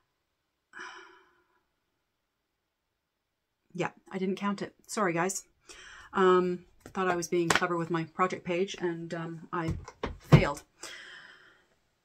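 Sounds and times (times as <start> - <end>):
woman sighing: 0.8 - 1.6.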